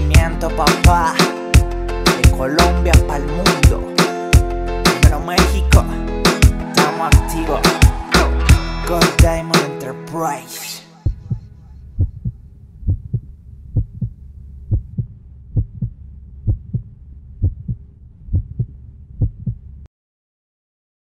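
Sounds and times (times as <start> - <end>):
heartbeat thumps: 11.1 - 19.7
faint hum: 11.1 - 19.9
low steady rumble: 11.1 - 19.9.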